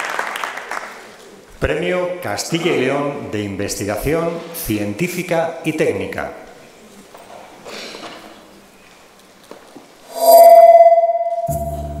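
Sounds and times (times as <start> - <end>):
quiet hall noise: 0.0 - 12.0
bright shimmering chime: 10.1 - 12.0.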